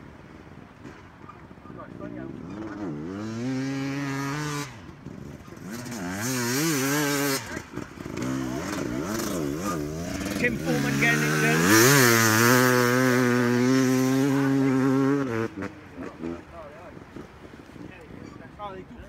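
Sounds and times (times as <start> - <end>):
motorcycle engine revving: 0.8 - 18.2.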